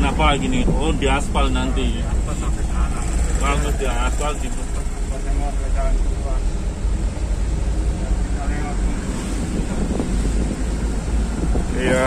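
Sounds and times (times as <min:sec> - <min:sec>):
car driving rumble inside cabin: 0:00.0 - 0:12.0.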